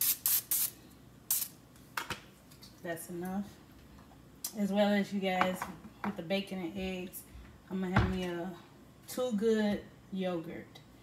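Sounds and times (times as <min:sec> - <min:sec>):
cooking oil spray hissing: 0:00.0 - 0:01.6.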